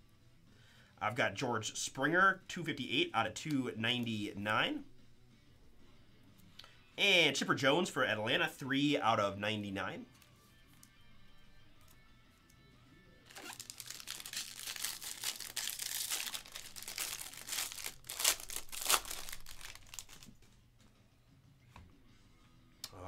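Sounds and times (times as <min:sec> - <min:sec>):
foil wrapper crinkling and tearing: 0:13.3 - 0:20.4.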